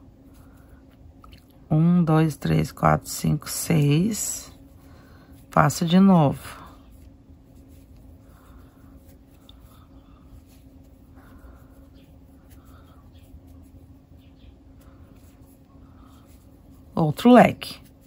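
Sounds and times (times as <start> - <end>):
twine rustling through crochet: 2.4 - 18.0.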